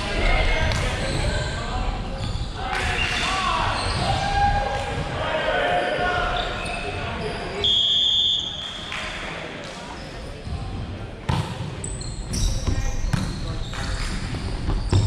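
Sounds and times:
whistle blast: 0:07.6 - 0:08.8.

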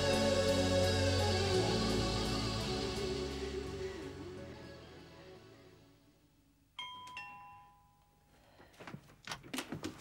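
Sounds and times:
ding-dong doorbell chime: 0:06.8 - 0:08.3.

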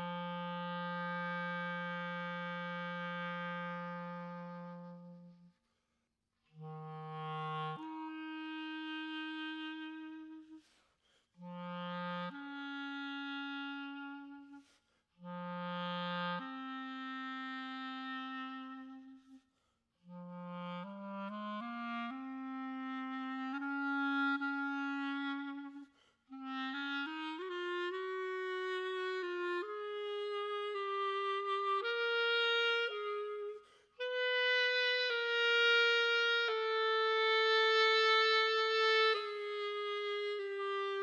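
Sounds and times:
clarinet playing slow notes: 0:00.0 - 0:05.6, 0:06.5 - 0:10.8, 0:11.4 - 0:41.0.

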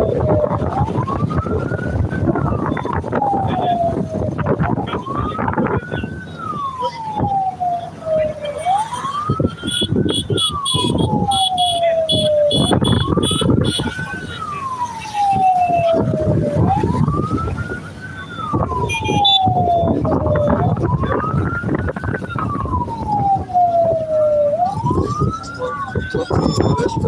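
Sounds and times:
motorcycle and vehicle engines rumbling: 0:00.0 - 0:27.0
wail siren: 0:00.0 - 0:27.0.

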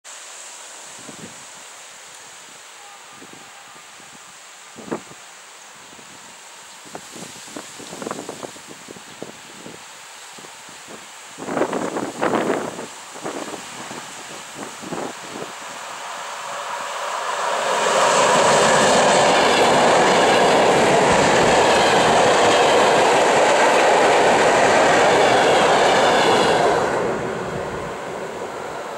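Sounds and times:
electric train passing on rails: 0:00.1 - 0:28.9.

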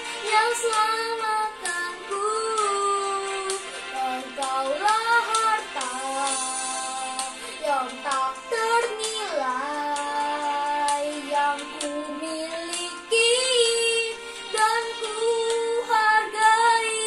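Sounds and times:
boy singing worship song: 0:00.0 - 0:17.0.

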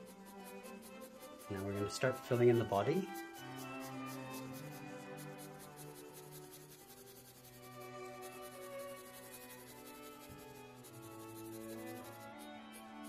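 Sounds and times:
pencil scratching on paper: 0:00.0 - 0:13.0
quiet background music: 0:00.0 - 0:13.0.

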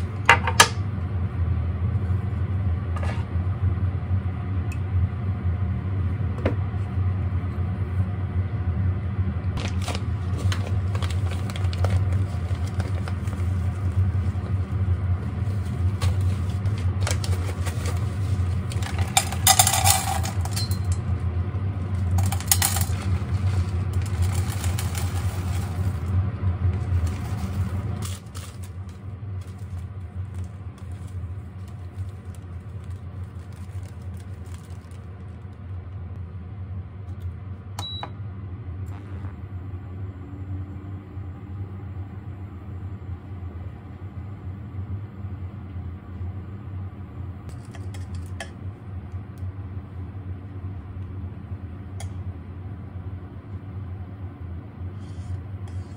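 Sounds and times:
steady low hum: 0:00.0 - 0:55.9
wax flakes rattling into saucepan: 0:15.3 - 0:21.1, 0:21.8 - 0:35.5.

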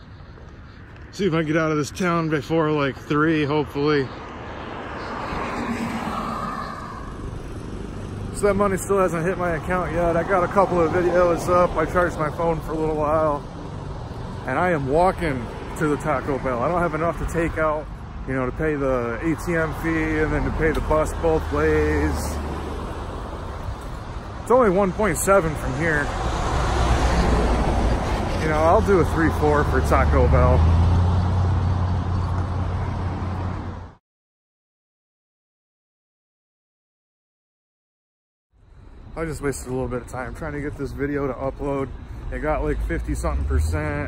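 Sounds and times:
vehicle passing: 0:01.0 - 0:34.0, 0:39.2 - 0:44.0.

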